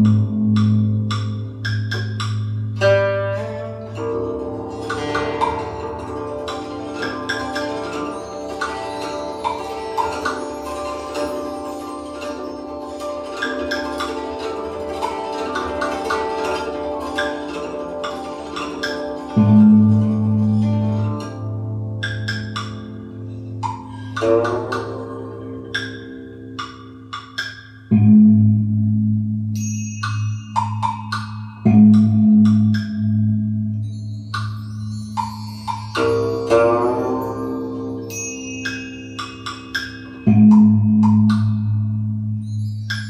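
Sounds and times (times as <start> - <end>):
instrumental music: 0.0 - 43.0.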